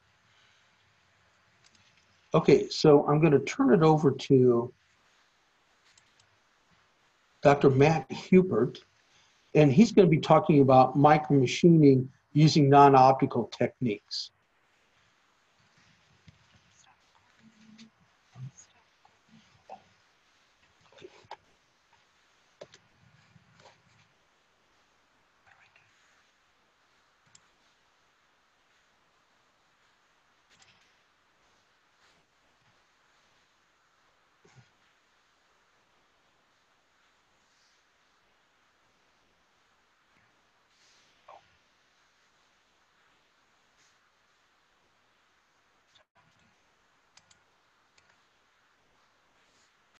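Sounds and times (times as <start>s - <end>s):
faint room hiss: 0.0s - 49.9s
computer mouse clicks: 47.1s - 48.2s.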